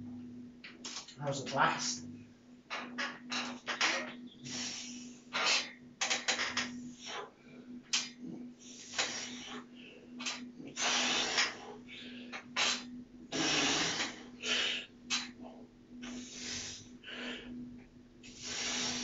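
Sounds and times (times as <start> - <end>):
man breathing hard: 6.9 - 14.9, 16.0 - 17.6.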